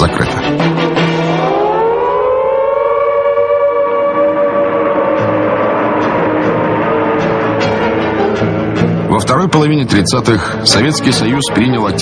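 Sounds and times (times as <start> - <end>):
siren wailing: 0.8 - 9.1.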